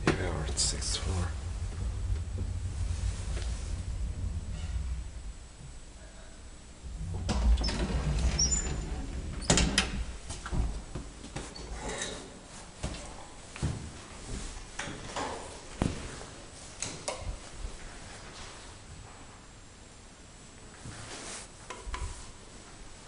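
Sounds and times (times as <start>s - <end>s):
elevator door rumble: 0.0s - 12.0s
elevator door knocks and clicks: 6.9s - 11.0s.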